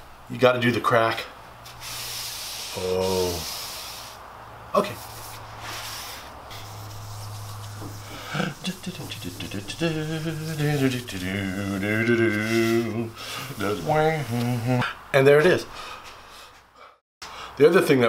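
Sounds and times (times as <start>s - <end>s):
gloved hand rubbing wax on metal: 4.8s - 14.5s
man humming: 8.0s - 15.0s.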